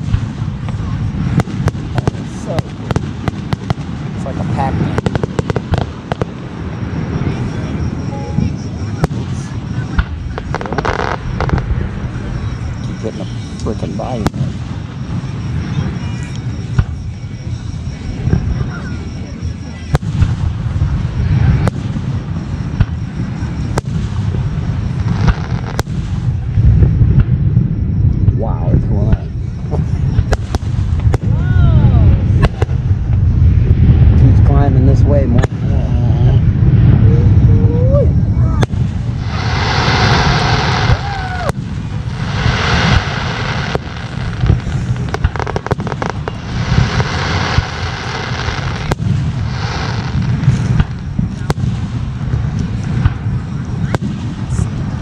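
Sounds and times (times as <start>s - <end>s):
fireworks bangs and crackles: 0.0s - 55.0s
low rumble: 0.0s - 55.0s.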